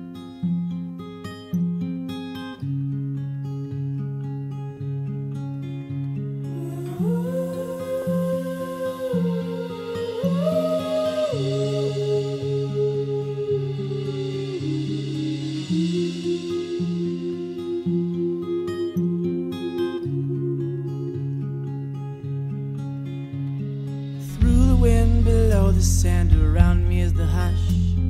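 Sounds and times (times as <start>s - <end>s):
picked guitar pattern: 0.0s - 28.0s.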